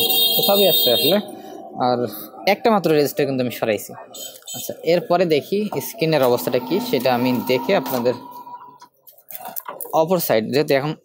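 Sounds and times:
man talking: 0.0 - 8.3
high-pitched electronic beep: 4.0 - 8.9.

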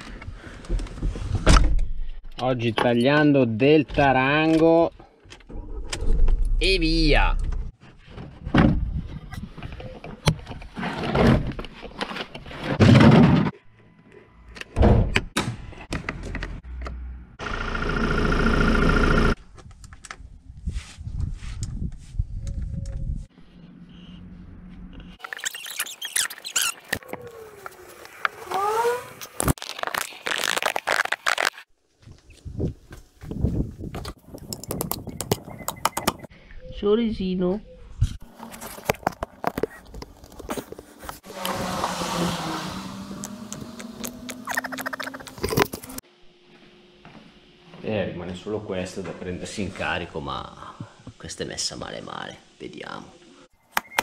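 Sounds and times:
knocks clunks and scrapes: 7.4 - 13.7
squeaks: 25.2 - 27.0.

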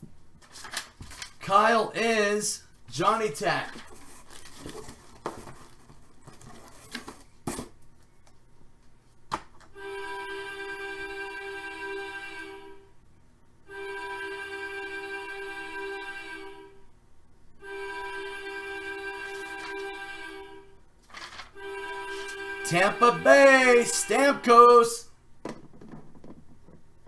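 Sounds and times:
horn-like chord blasts: 17.6 - 20.7, 21.5 - 25.0.

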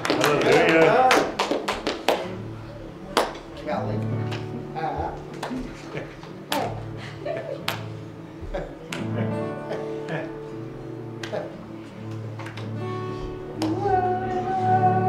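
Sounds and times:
congregation clapping: 0.0 - 2.5, 3.1 - 3.6, 4.2 - 7.0, 7.6 - 10.4, 11.1 - 14.0.

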